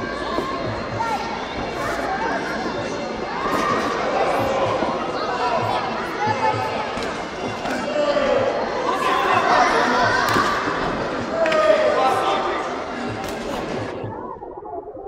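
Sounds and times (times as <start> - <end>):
crowd talking and shouting: 0.0 - 15.0.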